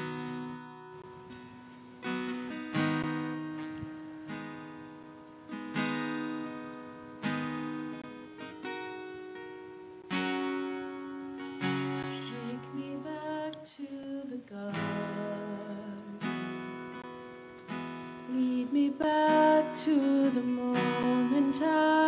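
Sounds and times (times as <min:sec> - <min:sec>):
acoustic guitar strumming: 0:00.0 - 0:22.0
woman singing: 0:12.0 - 0:16.4, 0:18.2 - 0:22.0.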